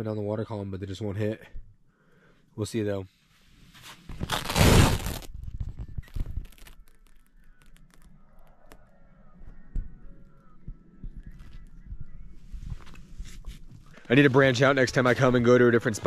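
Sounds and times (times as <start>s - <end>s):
rustling and crackling handling noise: 3.8s - 8.8s, 11.2s - 14.8s.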